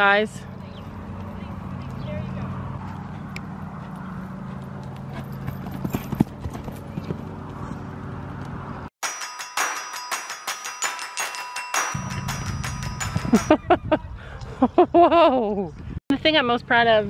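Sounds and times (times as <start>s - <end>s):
horse hooves cantering on sand: 0.7s - 7.9s
music with ringing mallet notes: 9.0s - 13.7s.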